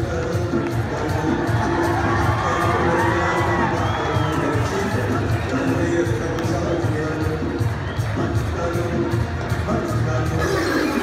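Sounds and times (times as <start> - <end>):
loud dance music: 0.0 - 11.0
stadium crowd cheering: 0.0 - 11.0.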